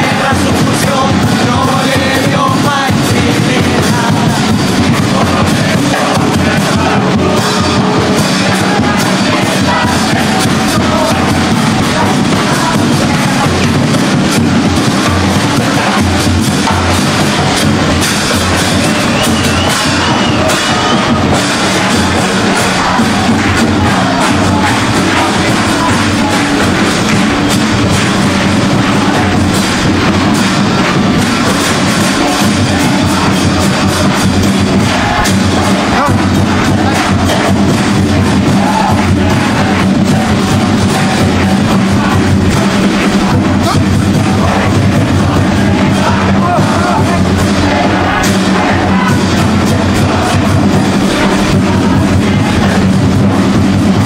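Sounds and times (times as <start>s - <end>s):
audience noise: 0.0s - 54.0s
drums beating: 0.0s - 54.0s.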